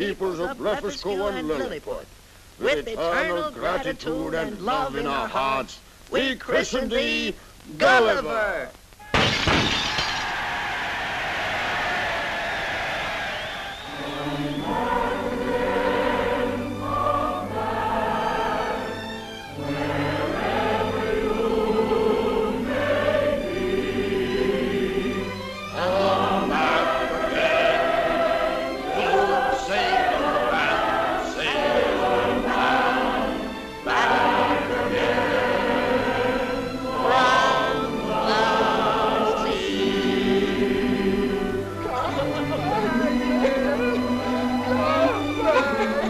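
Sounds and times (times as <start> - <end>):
choir singing: 10.4 - 46.0
orchestra playing: 14.0 - 39.3, 41.1 - 46.0.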